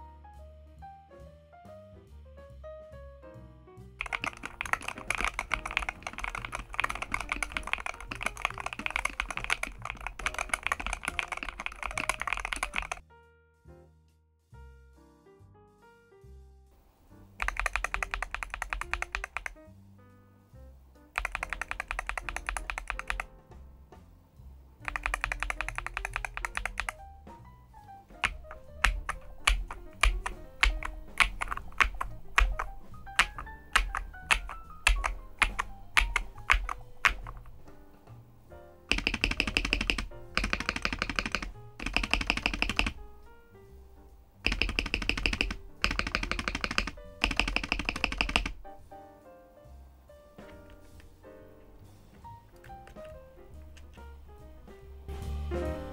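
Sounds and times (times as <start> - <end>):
fast typing on keyboard: 4.0 - 13.0, 17.4 - 19.6, 21.2 - 23.3, 24.8 - 27.0, 28.1 - 37.6, 38.9 - 43.0, 44.4 - 48.6, 52.8 - 53.1
separate keystrokes: 4.0 - 13.0, 17.4 - 19.6, 21.2 - 23.3, 24.8 - 27.0, 28.1 - 37.6, 38.9 - 43.0, 44.4 - 48.6, 52.6 - 53.2.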